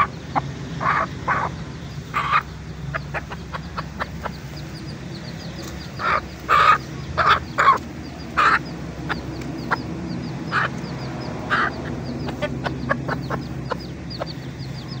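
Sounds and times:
chicks peeping: 0.0s - 15.0s
hen clucking: 0.0s - 15.0s.

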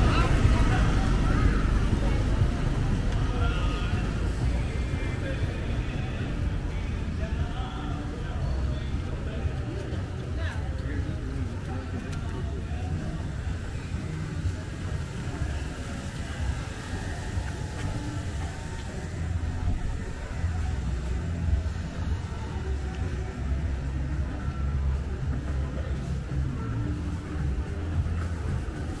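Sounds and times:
bass music from bars: 0.0s - 29.0s
traffic rumble: 0.0s - 29.0s.

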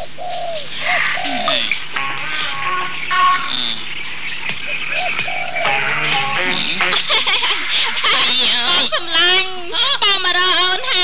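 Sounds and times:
bird calls: 0.0s - 11.0s
background music: 0.9s - 11.0s.

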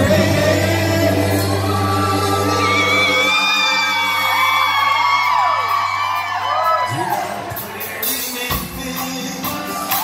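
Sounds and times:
low bass notes: 0.0s - 9.6s
audience whoops and whistles: 2.6s - 7.5s.

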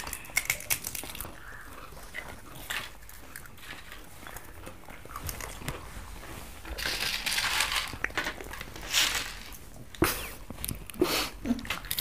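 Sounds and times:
cereal rustling and crackling: 0.0s - 10.0s.

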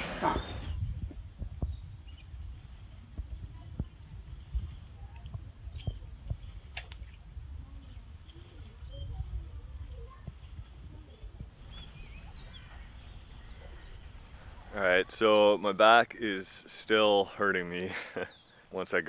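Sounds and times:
wind rumble on microphone: 0.1s - 14.8s
faint bird chirps: 11.6s - 14.8s.

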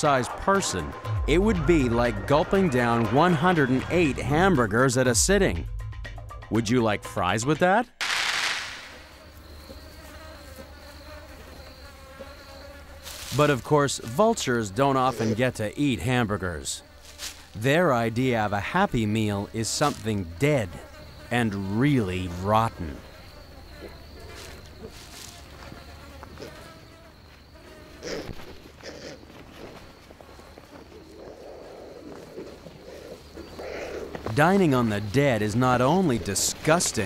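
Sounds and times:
buzz of insects: 8.0s - 37.0s.

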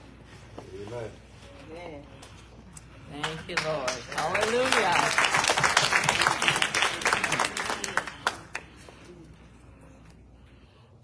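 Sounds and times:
congregation applauding: 3.6s - 8.7s.

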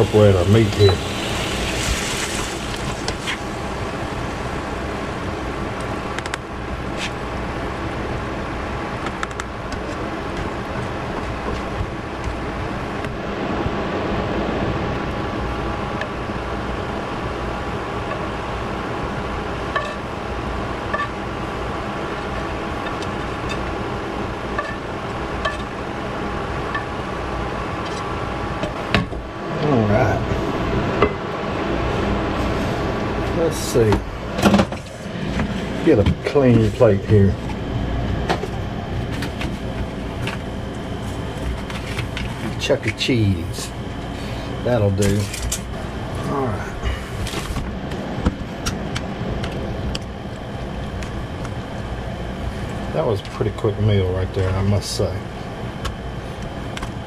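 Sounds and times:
meat sizzling in a frying pan: 0.0s - 4.8s
spatula scraping pan: 24.6s - 25.7s.

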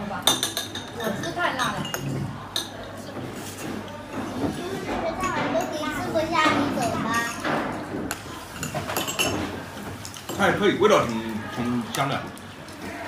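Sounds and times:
tableware clinking: 0.2s - 11.2s
people chattering: 9.4s - 13.0s.

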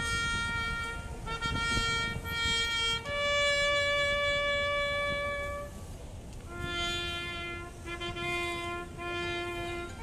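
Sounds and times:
solo brass instrument call: 0.0s - 10.0s.

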